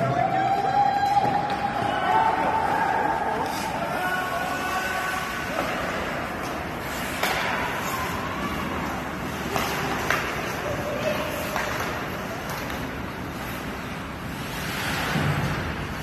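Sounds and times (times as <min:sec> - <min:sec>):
hockey sticks and puck knocks: 0:05.4 - 0:13.8.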